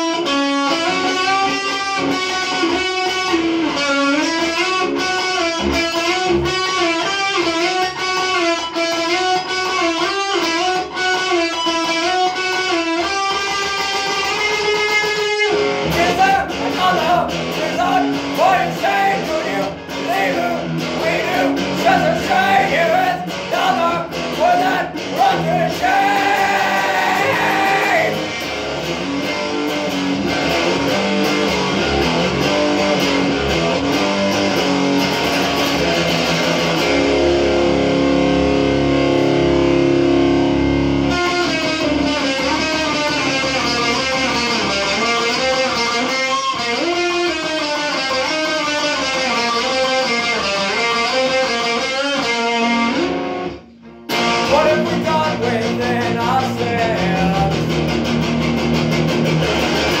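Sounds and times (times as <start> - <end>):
electric guitar playing: 0.0 - 60.0.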